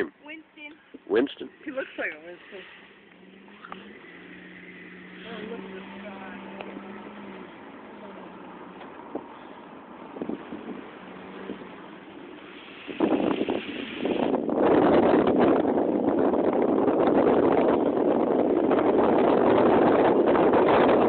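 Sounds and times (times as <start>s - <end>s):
car road noise: 0.0s - 21.0s
wind buffeting microphone: 2.9s - 21.0s.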